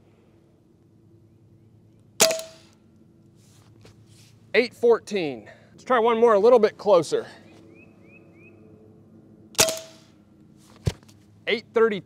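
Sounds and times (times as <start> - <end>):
air rifle shot crack: 2.2 - 2.8, 9.6 - 10.1.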